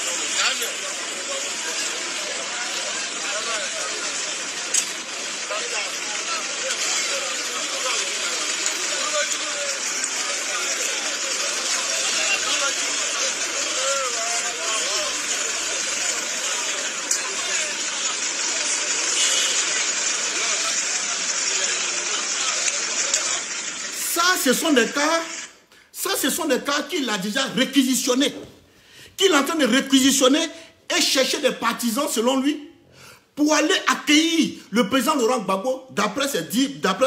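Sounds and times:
minibus engines running: 0.0 - 25.6
steady noisy hiss: 0.0 - 37.0.

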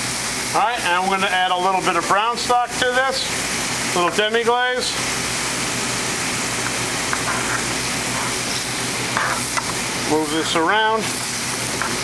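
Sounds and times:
mushrooms sizzling in a skillet: 0.0 - 12.0.

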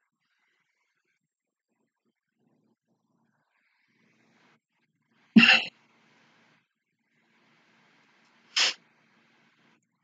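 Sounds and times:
sharp nasal exhale: 8.6 - 8.8.

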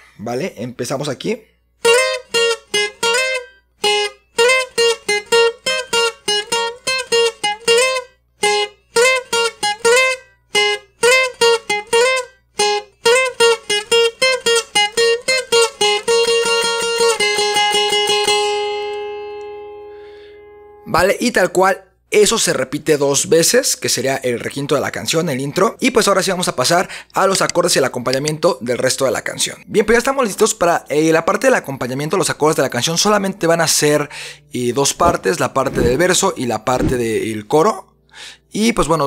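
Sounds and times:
twelve-string acoustic guitar melody: 1.8 - 20.8, 33.7 - 38.1.

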